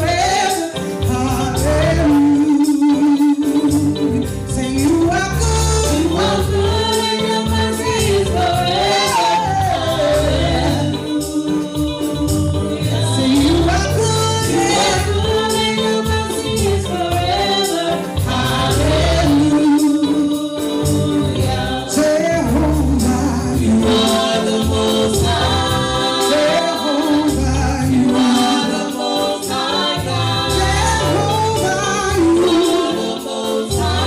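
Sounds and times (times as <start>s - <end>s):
gospel singers singing: 0.0s - 34.0s
live band accompaniment: 0.0s - 34.0s.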